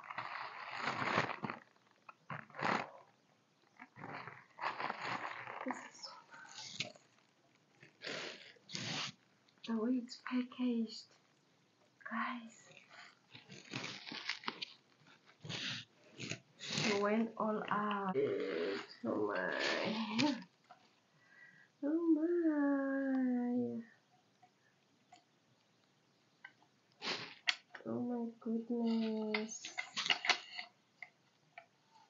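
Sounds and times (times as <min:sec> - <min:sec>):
loud plastic rustle: 0:00.0 - 0:02.9, 0:03.9 - 0:07.2, 0:12.8 - 0:17.2
plastic wrap crinkling: 0:00.0 - 0:02.9, 0:03.7 - 0:09.7, 0:12.7 - 0:21.0
tissue paper rustling and crinkling: 0:12.8 - 0:18.1.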